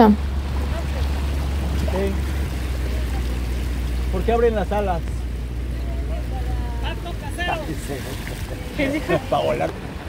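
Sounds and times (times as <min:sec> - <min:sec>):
outboard motor droning: 0:00.0 - 0:10.0.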